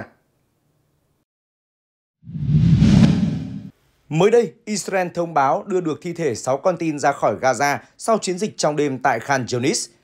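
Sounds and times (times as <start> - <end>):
deep whoosh: 2.3 - 3.7.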